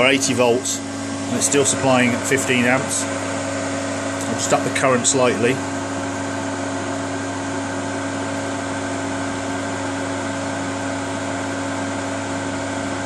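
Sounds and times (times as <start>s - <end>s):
cooling fans whirring: 0.0s - 13.0s.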